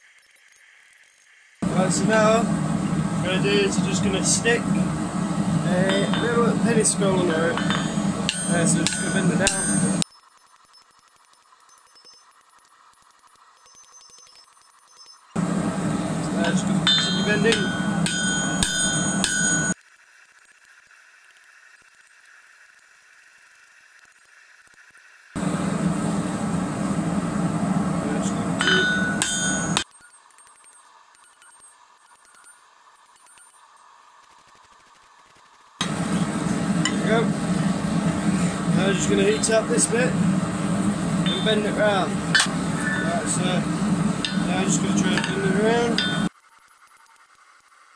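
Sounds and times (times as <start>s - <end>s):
hammer striking hot steel on anvil: 1.6s - 10.0s, 15.4s - 19.8s, 25.4s - 29.9s, 35.8s - 46.3s.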